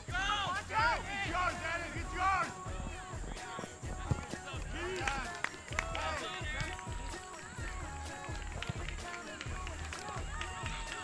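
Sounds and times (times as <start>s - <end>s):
many voices shouting: 10.2s - 11.0s.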